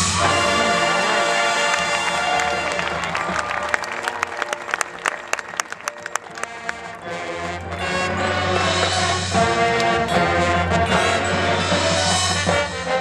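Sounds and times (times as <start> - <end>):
marching band playing: 0.0 - 13.0.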